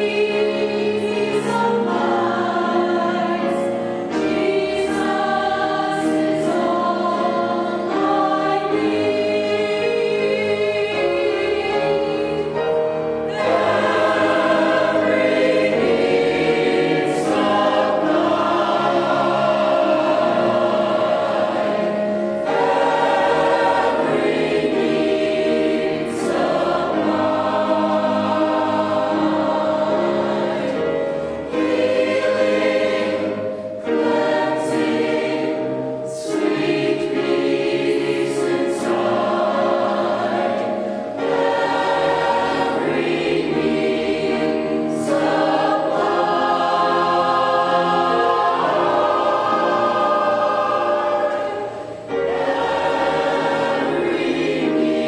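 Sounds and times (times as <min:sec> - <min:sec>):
mixed choir singing: 0:00.0 - 0:55.0.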